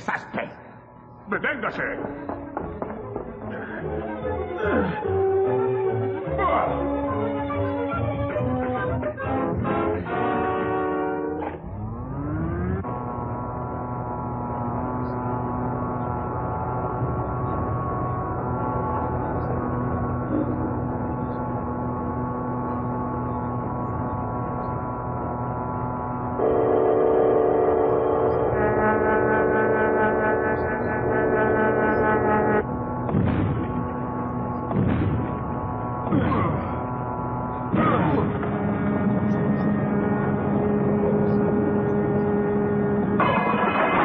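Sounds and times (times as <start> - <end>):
humming drone: 2.1 - 44.0
held orchestral chord: 3.2 - 33.0
machinery whine rising: 5.0 - 27.0, 27.6 - 44.0.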